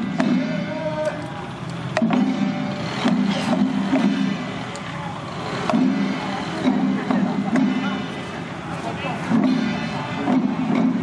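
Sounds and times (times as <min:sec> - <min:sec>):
sharp clacks and knocks: 0:00.0 - 0:11.0
music: 0:09.3 - 0:11.0.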